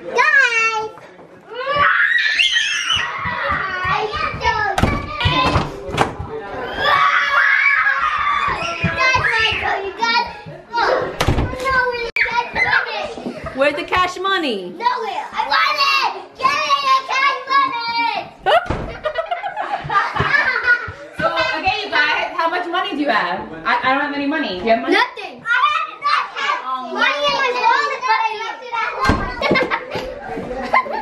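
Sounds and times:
children shouting and squealing: 0.0s - 13.6s, 14.8s - 22.2s, 25.3s - 31.0s.

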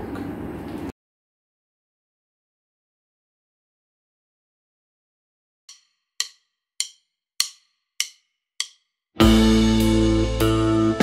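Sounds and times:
metronome clicks: 5.7s - 8.9s.

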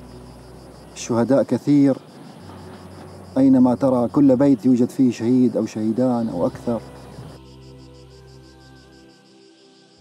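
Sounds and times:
crickets chirping: 0.0s - 10.0s
soft background music: 0.0s - 10.0s.

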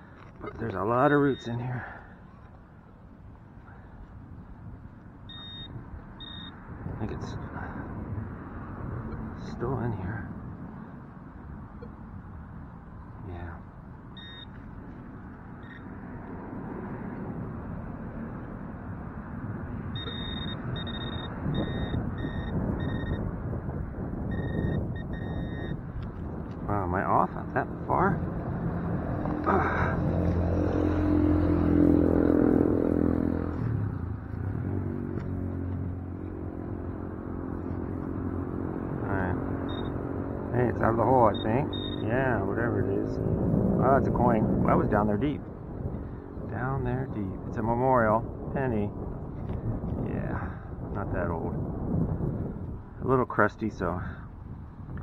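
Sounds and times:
metal detector beeping: 0.4s - 1.6s, 5.2s - 6.6s, 14.1s - 14.6s, 15.6s - 15.9s, 19.9s - 23.3s, 24.3s - 25.9s, 39.6s - 40.0s, 41.3s - 42.1s
car driving past: 28.3s - 41.0s.

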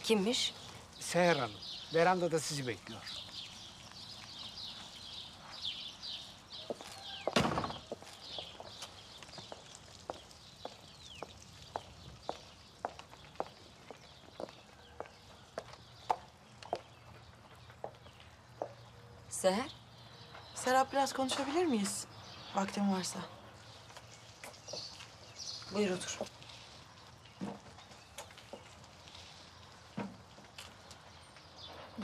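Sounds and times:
small birds chirping: 0.0s - 32.0s
loud thump: 7.4s - 7.8s.

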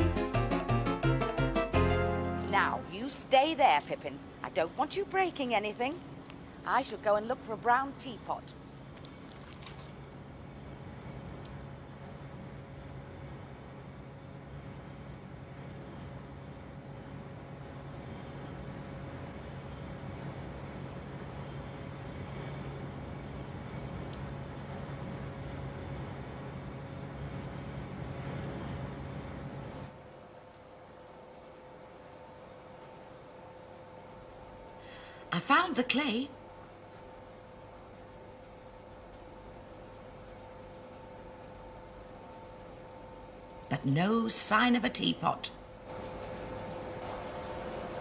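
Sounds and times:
factory machinery humming: 0.0s - 48.0s.

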